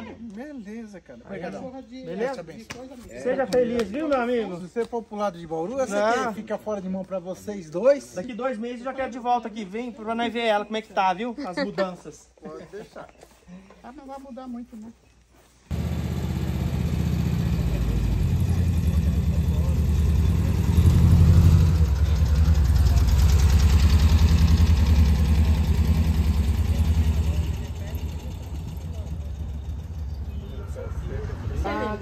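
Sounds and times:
van engine running: 0:15.7 - 0:30.4.

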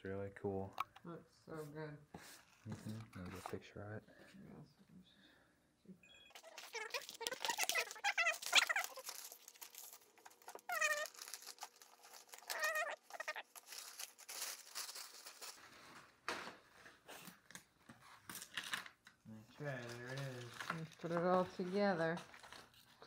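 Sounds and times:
paper crinkling and rustling: 0:02.2 - 0:03.6, 0:06.4 - 0:23.0.

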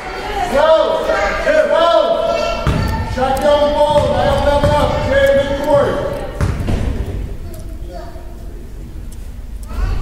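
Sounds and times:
basketball bouncing on wooden floor: 0:02.6 - 0:07.3.

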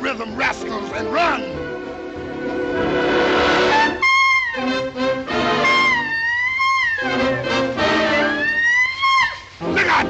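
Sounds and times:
band playing lower figures: 0:00.0 - 0:10.0
jazz trumpet high note: 0:03.4 - 0:10.0.

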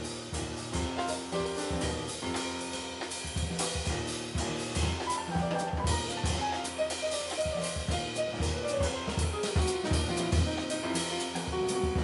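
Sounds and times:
drums and cymbals: 0:00.0 - 0:12.0
grand piano: 0:00.0 - 0:12.0.

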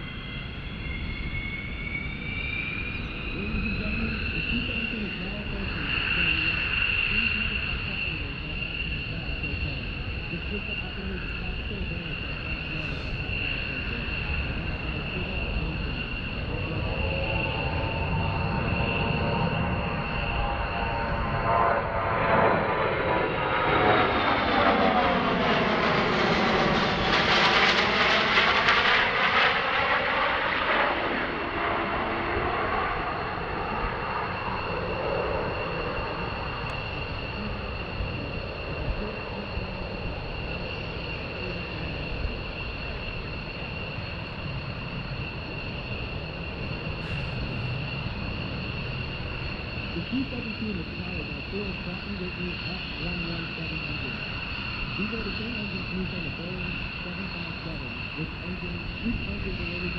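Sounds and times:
jet aircraft flyby whoosh: 0:00.0 - 0:49.9
jet engine rumble: 0:00.0 - 0:59.9.

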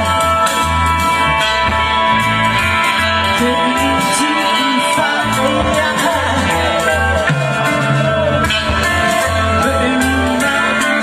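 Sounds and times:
bass guitar pulses: 0:00.0 - 0:11.0
drums: 0:00.0 - 0:11.0
electric guitar: 0:00.0 - 0:11.0
live reggae band playing: 0:00.0 - 0:11.0.

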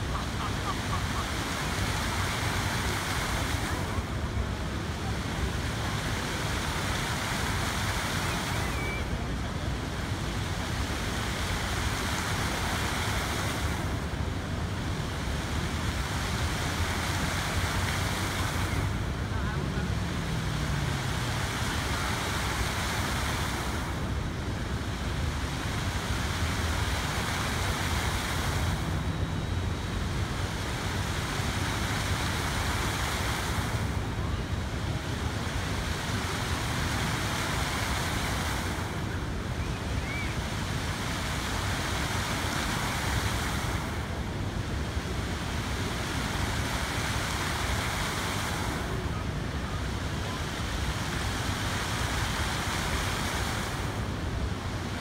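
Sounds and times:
fountain jets splashing: 0:00.0 - 0:55.0.

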